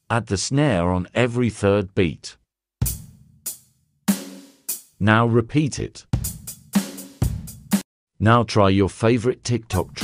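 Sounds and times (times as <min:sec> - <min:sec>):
snare drum: 0:04.1 - 0:04.8.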